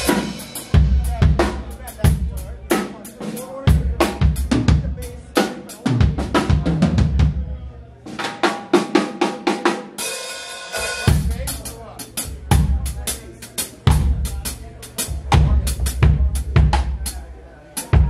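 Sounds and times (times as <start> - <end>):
drum kit groove: 0.0 - 18.0.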